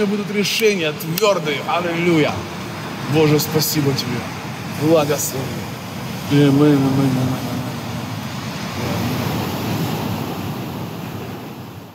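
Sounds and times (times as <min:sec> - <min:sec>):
ocean surf breaking: 0:00.0 - 0:11.9.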